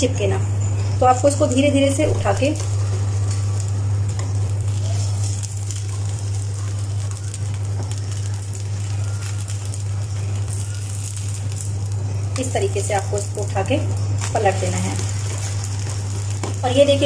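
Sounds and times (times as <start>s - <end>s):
strong low hum: 0.0s - 17.0s
batter sizzling in oil: 0.1s - 17.0s.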